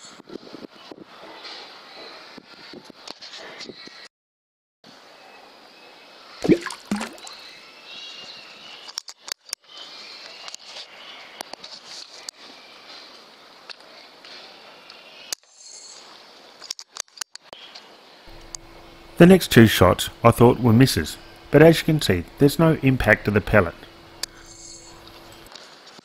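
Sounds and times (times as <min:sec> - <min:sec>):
faint steady hiss: 0:17.6 - 0:25.5.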